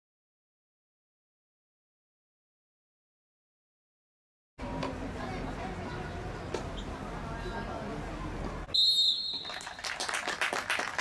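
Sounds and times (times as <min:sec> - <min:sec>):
referee's whistle blast: 0:08.7 - 0:09.6.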